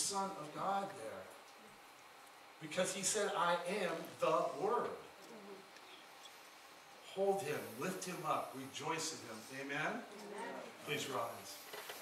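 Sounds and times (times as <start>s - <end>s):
faint murmur: 3.7s - 11.7s.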